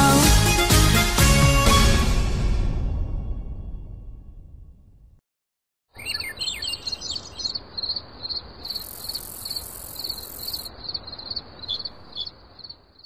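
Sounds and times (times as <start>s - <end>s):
gliding bird calls: 5.9s - 12.3s
insect chirping: 6.0s - 13.0s.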